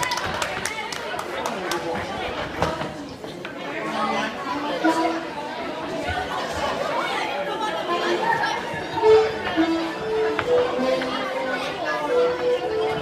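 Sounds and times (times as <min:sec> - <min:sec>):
crowd chatting: 0:00.0 - 0:13.0.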